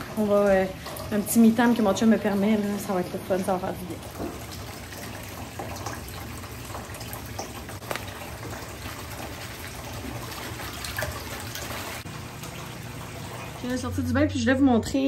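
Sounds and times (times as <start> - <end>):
water pouring into bathtub: 0.0 - 14.1.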